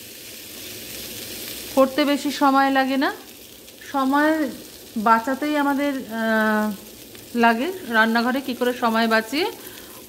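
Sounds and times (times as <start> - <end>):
faint sizzle of naan cooking: 0.0 - 10.0
woman speaking: 1.8 - 6.8, 7.4 - 9.6.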